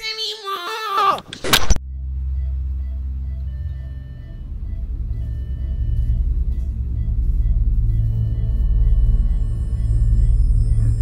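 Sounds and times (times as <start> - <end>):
voice: 0.0 - 1.3
eerie ambient drone: 1.8 - 11.0.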